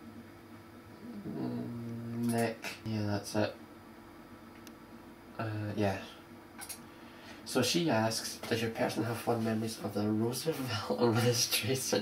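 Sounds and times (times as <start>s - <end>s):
faint room hum: 0.0s - 12.0s
man humming: 1.0s - 2.9s.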